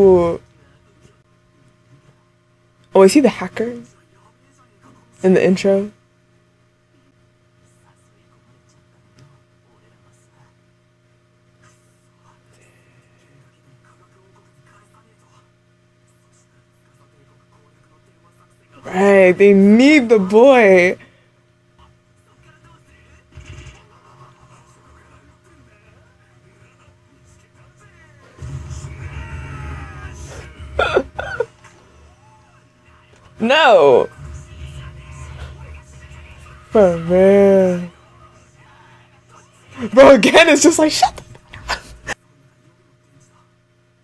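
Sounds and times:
low hum: 0:22.9 - 0:40.4
loud voice outbursts: 0:28.4 - 0:31.2, 0:33.4 - 0:34.1.

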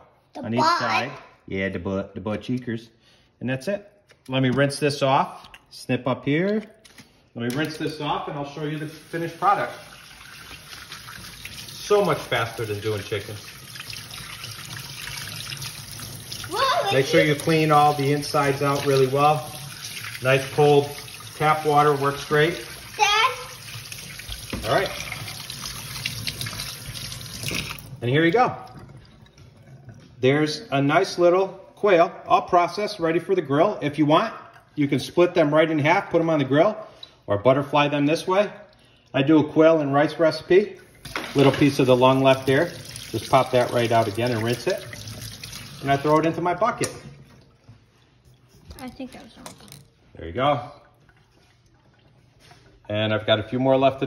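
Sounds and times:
man speaking: 0:07.4 - 0:09.9
faucet water splashing into sink: 0:08.6 - 0:30.1, 0:40.8 - 0:47.7.

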